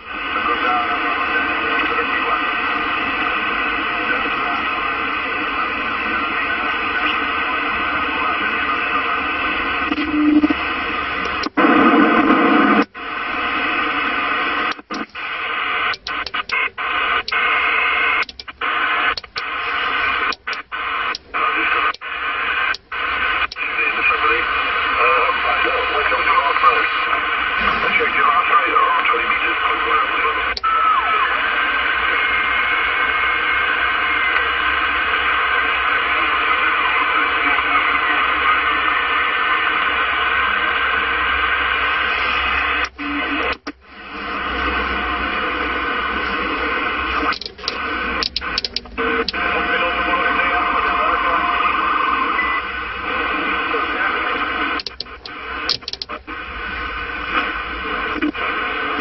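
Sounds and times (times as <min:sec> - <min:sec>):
radio static hiss: 0:00.0 - 0:59.0
voices over radio: 0:00.0 - 0:59.0.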